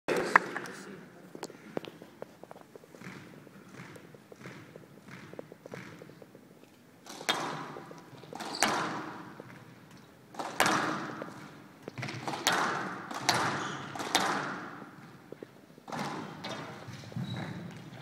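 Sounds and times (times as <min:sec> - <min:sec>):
squash ball cracking off rackets: 0:10.3 - 0:15.0.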